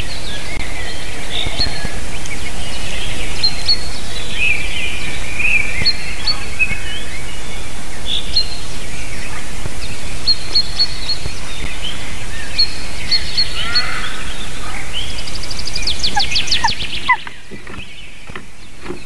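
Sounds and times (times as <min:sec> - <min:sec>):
low microphone rumble: 0:00.0 - 0:19.0
songbirds chirping and warbling: 0:00.0 - 0:19.0.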